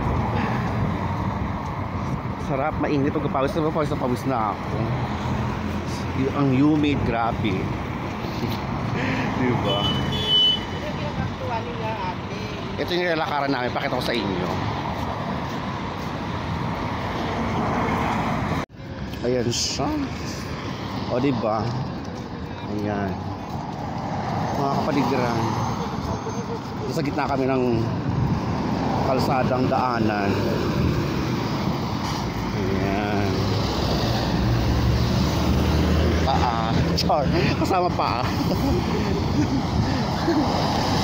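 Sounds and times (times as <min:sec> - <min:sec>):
cars passing: 0:00.0 - 0:41.0
road traffic rumbling: 0:00.0 - 0:41.0.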